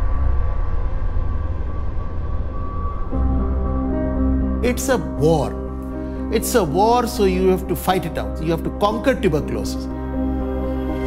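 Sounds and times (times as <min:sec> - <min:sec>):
low rumble: 0:00.0 - 0:06.4.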